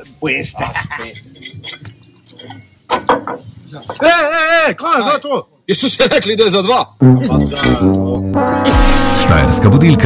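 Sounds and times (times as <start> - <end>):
music jingle: 7.0 - 10.0
man speaking: 9.1 - 10.0.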